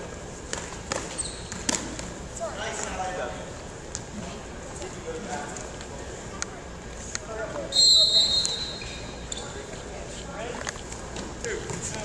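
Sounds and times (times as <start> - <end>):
referee's whistle blast: 7.7 - 9.0.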